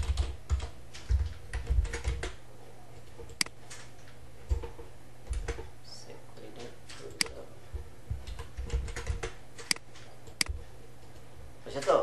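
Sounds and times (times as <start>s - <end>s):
steady low hum: 0.0s - 12.0s
keyboard and mouse clicks: 3.1s - 5.7s, 8.2s - 11.2s.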